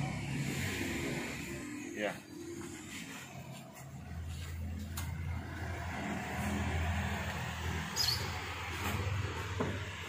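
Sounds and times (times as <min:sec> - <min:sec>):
car engine low hum: 0:00.0 - 0:10.0.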